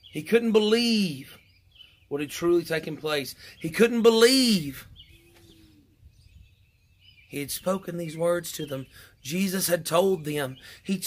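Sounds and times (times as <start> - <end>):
faint bird calls: 1.1 - 7.8.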